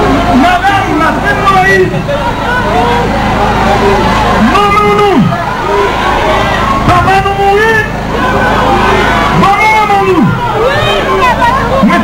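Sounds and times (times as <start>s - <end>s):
low hum: 0.0s - 12.0s
man speaking into a microphone: 0.3s - 2.2s, 4.4s - 5.4s, 6.8s - 8.1s, 9.3s - 10.4s.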